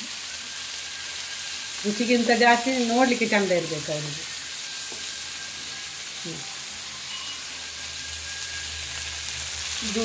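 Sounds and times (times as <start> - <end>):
fish sizzling in oil: 0.0 - 10.0.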